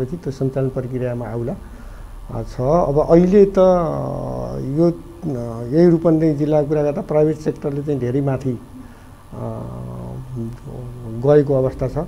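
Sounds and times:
man's hesitation hum: 0.0s - 12.0s.

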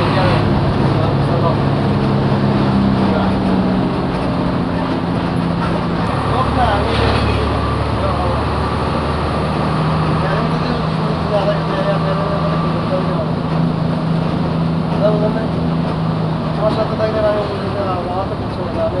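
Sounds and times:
bus engine droning: 0.0s - 19.0s
road noise: 0.0s - 19.0s.

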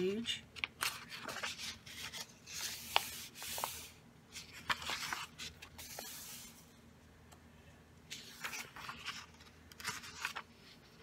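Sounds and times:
hand rustling on paper: 0.7s - 6.7s, 8.1s - 11.0s.

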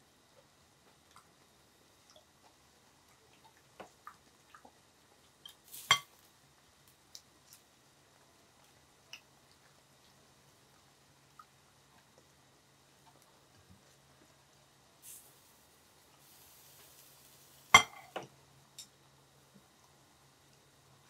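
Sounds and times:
food simmering: 0.0s - 21.0s
tongs tapping a pan: 5.5s - 6.1s, 17.7s - 18.9s.

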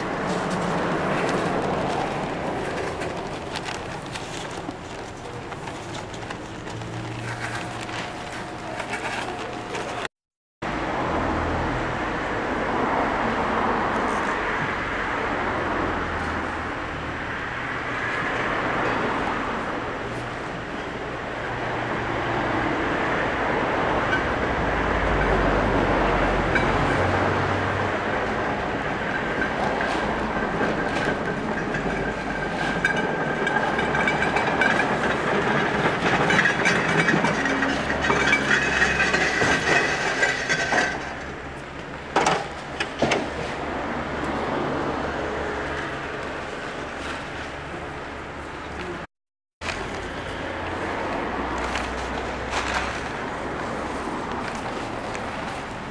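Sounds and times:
rakes scraping over loose soil: 0.0s - 10.1s.

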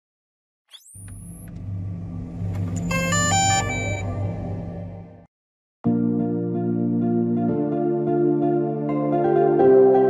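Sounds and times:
low rumbling hum: 1.0s - 5.3s
bright electronic tones: 2.6s - 5.0s.

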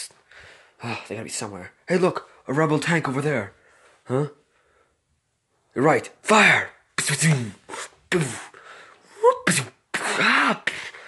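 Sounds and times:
person making cannon mouth sounds: 7.0s - 11.0s.

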